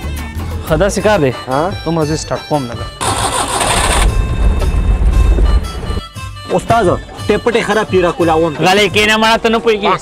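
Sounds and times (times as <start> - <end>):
car starter cranking: 3.0 - 4.3.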